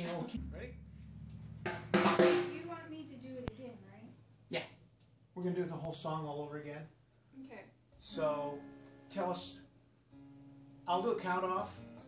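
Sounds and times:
drum kit hits ringing: 0:00.0 - 0:03.2.

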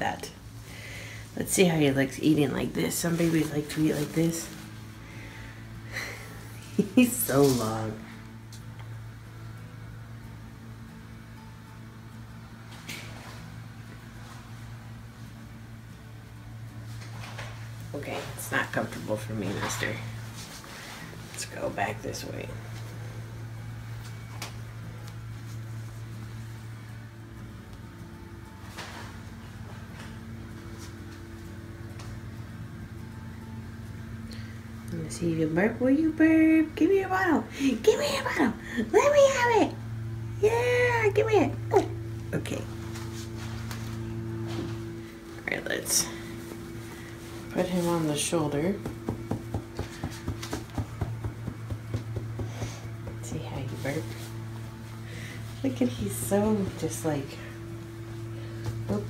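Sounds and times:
appliance humming: 0:00.0 - 0:59.0
hand patting doll's back: 0:48.8 - 0:53.2.

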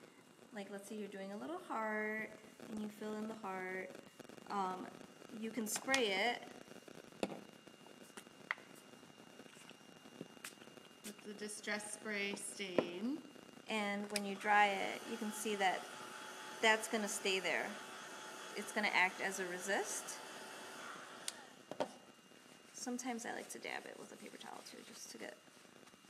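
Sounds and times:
faint high whine: 0:00.0 - 0:26.0
heat gun blowing air: 0:14.3 - 0:21.6.

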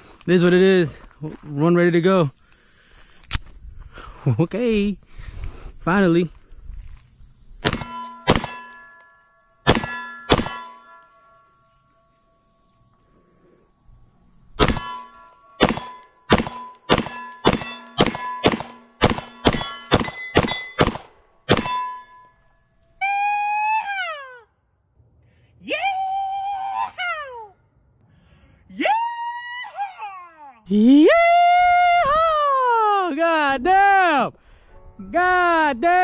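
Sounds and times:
pistol shots: 0:07.6 - 0:08.8, 0:09.6 - 0:10.7, 0:14.6 - 0:15.0, 0:15.6 - 0:21.8
steel plates ringing: 0:07.6 - 0:12.4, 0:14.6 - 0:23.0
man's drawn-out shout: 0:25.6 - 0:27.5, 0:28.7 - 0:34.4.

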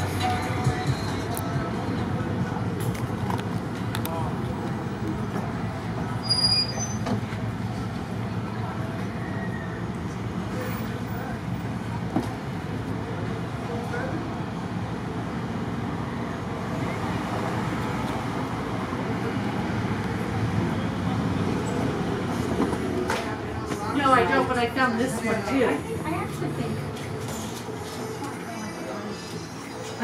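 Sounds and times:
low rumble of street traffic: 0:00.0 - 0:30.0.

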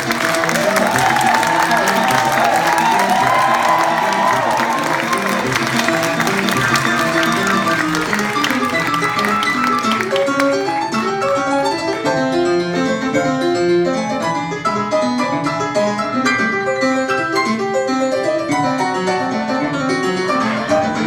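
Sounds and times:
audience cheering and clapping: 0:00.0 - 0:12.1.

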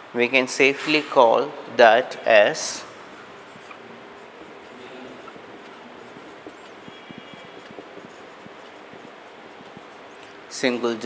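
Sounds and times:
low room hum: 0:01.5 - 0:11.0
marker pen on whiteboard: 0:02.5 - 0:11.0.

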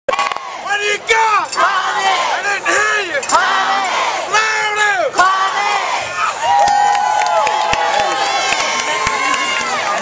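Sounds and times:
cheerleaders shouting a chant: 0:00.1 - 0:10.0.

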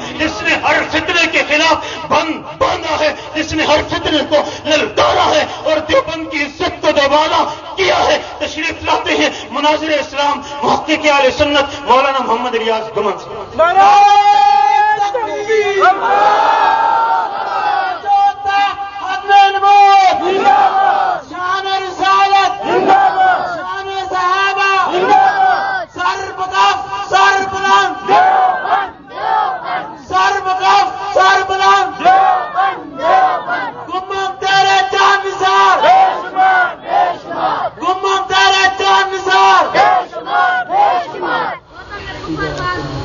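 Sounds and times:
crowd of men shouting slogans: 0:15.8 - 0:18.1, 0:20.0 - 0:21.7, 0:22.4 - 0:24.2, 0:24.8 - 0:33.9, 0:34.8 - 0:37.8, 0:38.4 - 0:41.7.

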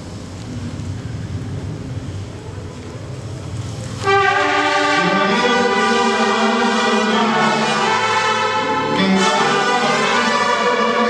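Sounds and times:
crowded hall rumble: 0:00.0 - 0:11.0.

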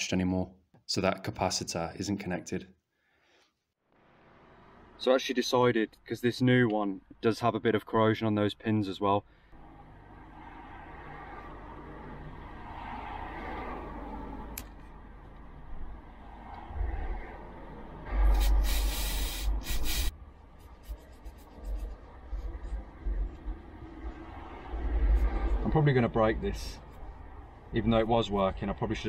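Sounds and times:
aerosol spray hiss: 0:18.3 - 0:20.1
toothbrush scrubbing circuit board: 0:18.3 - 0:22.6.

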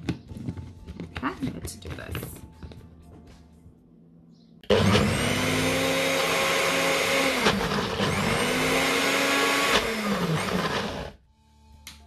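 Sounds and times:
blender motor running: 0:04.7 - 0:11.2.

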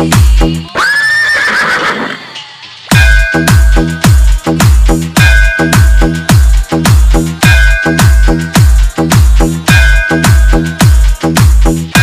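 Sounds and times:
horse whinny: 0:00.8 - 0:02.4
booming bass kick: 0:02.9 - 0:12.0.

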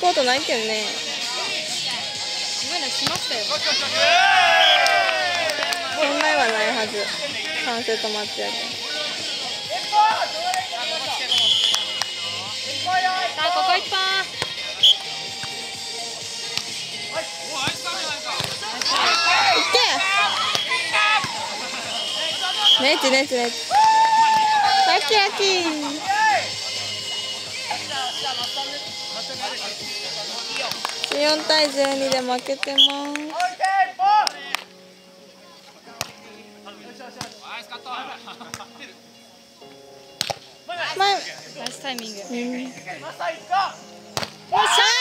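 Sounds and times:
players shouting: 0:03.0 - 0:08.0, 0:08.7 - 0:15.2, 0:16.6 - 0:30.8, 0:44.4 - 0:45.0.

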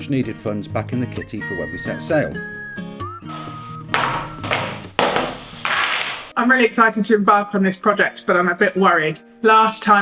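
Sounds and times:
objects knocking on table: 0:03.9 - 0:06.3.

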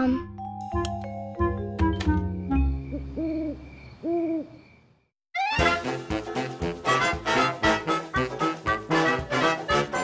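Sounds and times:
owl hooting: 0:02.8 - 0:04.8.

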